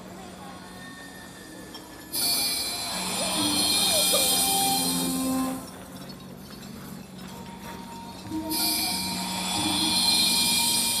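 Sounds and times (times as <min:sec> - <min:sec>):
shimmering whoosh: 0:08.4 - 0:11.0.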